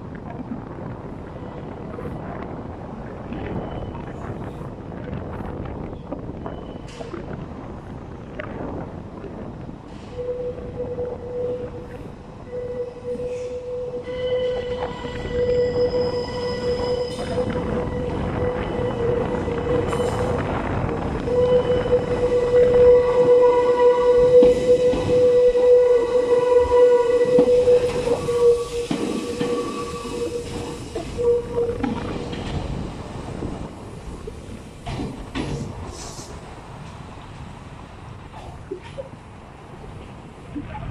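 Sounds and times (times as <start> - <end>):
train running rumble: 0.0 - 40.9
train wheels squealing: 12.5 - 19.0.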